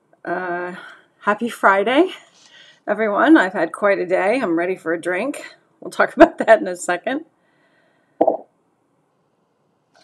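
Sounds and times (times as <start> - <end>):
woman's mouth pop: 8.2 - 8.4.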